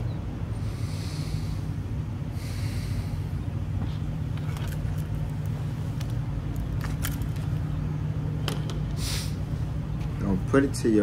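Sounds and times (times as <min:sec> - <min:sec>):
low steady hum: 0:00.0 - 0:11.0
short breathy hiss: 0:09.0 - 0:09.4.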